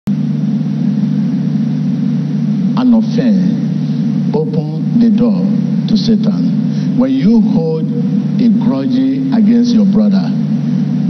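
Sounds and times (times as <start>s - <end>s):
loud steady low hum: 0.0s - 11.0s.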